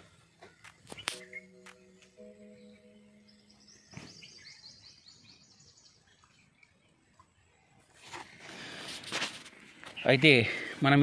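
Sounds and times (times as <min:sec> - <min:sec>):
bird chirping rapidly: 0:01.0 - 0:02.0.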